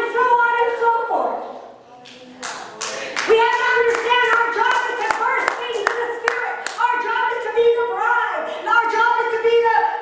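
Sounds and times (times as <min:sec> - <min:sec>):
woman speaking into a microphone: 0:00.0 - 0:01.6, 0:03.1 - 0:10.0
rhythmic hand clapping: 0:02.1 - 0:06.9.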